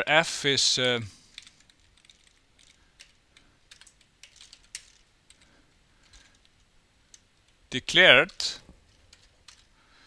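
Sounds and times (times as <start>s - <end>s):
computer keyboard typing: 1.3s - 6.4s, 8.9s - 9.7s.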